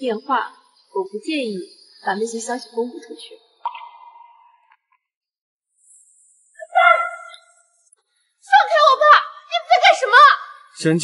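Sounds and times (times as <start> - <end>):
young woman shouting: 6.6 - 7.4
man speaking: 10.8 - 11.0.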